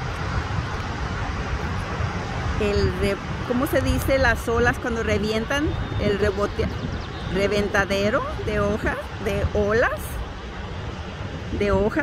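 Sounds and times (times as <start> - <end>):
ocean waves breaking on beach: 0.0 - 12.0.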